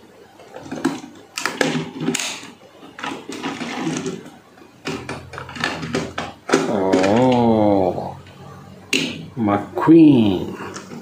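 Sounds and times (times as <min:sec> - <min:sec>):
plastic toy clicks and knocks: 0:00.6 - 0:07.4.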